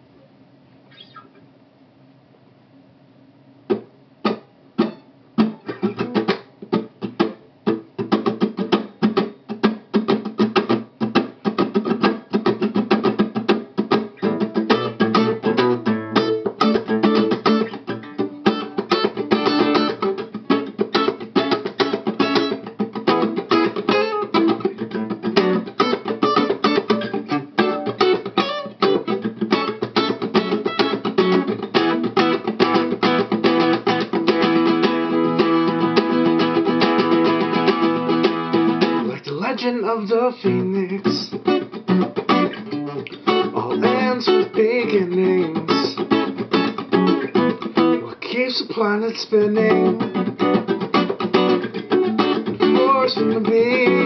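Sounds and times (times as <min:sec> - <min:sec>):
acoustic guitar funk strumming: 0:03.7 - 0:54.0.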